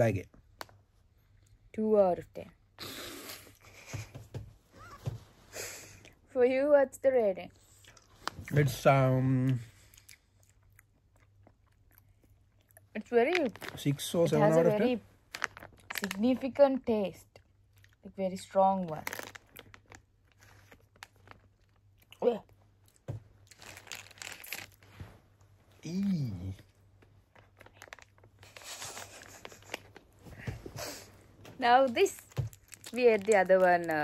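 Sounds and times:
plastic snack pouch crinkling: 13.1s - 16.4s, 18.8s - 21.9s, 23.4s - 24.8s, 27.3s - 30.1s, 31.8s - 34.0s.

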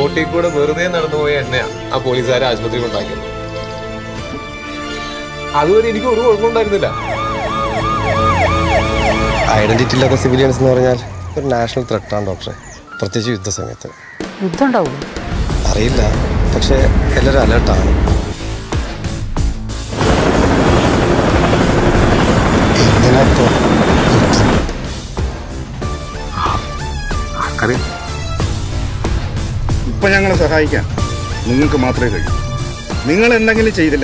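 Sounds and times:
siren wailing: 6.2s - 13.7s, 31.0s - 32.8s
low droning film score: 15.1s - 33.6s
helicopter flying overhead: 19.7s - 25.2s
man speaking: 27.3s - 28.0s.

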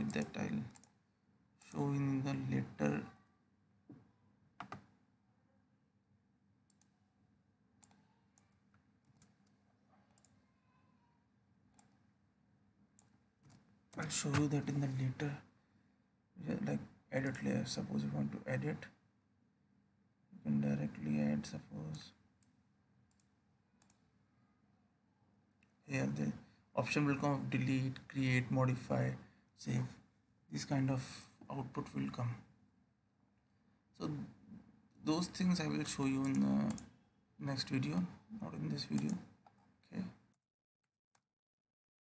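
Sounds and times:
computer mouse clicks: 0.0s - 1.0s, 4.6s - 4.9s, 6.7s - 7.0s, 7.8s - 10.4s, 11.7s - 12.0s, 13.0s - 14.5s, 21.9s - 24.1s, 35.8s - 36.9s, 38.6s - 39.6s.

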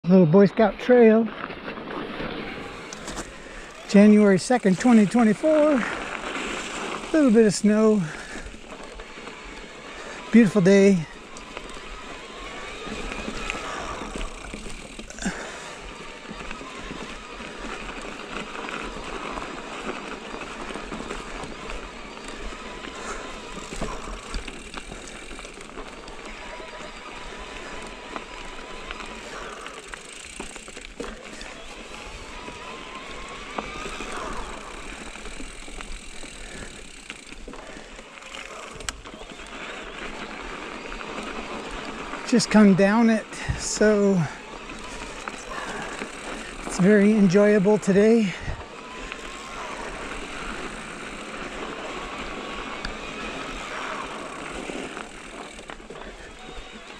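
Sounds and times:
bike rattling: 0.1s - 56.9s
bike tyres on dirt and rocks: 0.1s - 56.9s.

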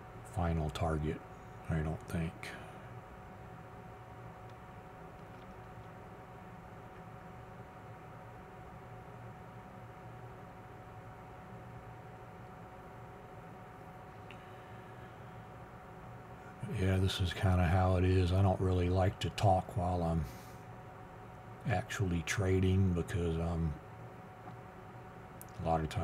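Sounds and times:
low electrical hum: 0.0s - 26.0s
soft hiss: 0.0s - 26.0s
thin steady whine: 0.0s - 26.0s.

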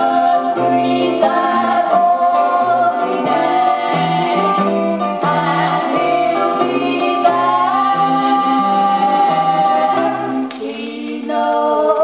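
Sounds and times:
gospel singing from vinyl record: 0.0s - 12.0s.

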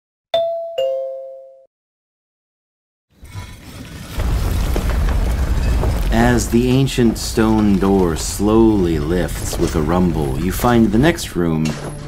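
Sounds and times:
two-note doorbell chime: 0.4s - 1.7s.

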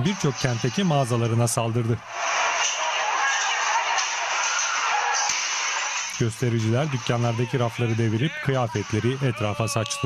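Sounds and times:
crowd shouting and chanting: 0.0s - 10.0s.

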